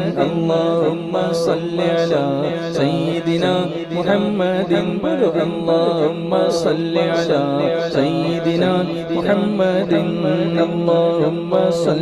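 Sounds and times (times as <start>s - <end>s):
man singing devotional song: 0.0s - 12.0s.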